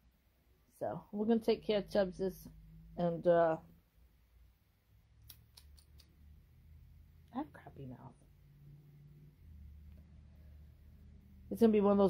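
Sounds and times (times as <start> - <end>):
faint quick clicks: 5.2 - 6.2.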